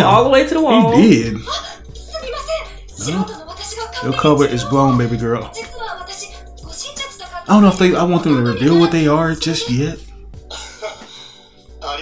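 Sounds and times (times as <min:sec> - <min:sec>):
anime dialogue: 0:00.0 - 0:01.5, 0:03.0 - 0:05.8
background music: 0:00.0 - 0:12.0.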